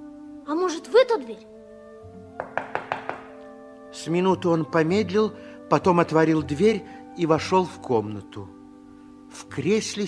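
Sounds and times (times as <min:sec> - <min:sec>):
soft background music: 0:00.0 - 0:10.0
quick knocks on door: 0:02.4 - 0:03.4.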